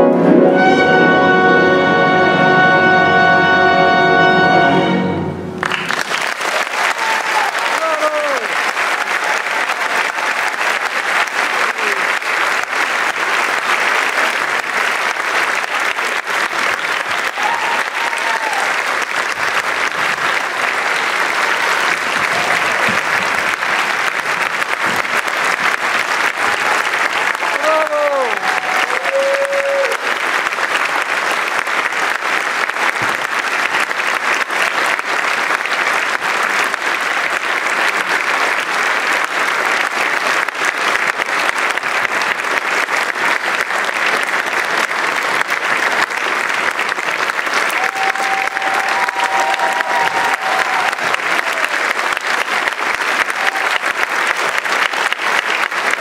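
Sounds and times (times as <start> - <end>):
audience applauding: 5.5 - 56.0
calls from crowd: 5.6 - 31.3, 44.6 - 56.0.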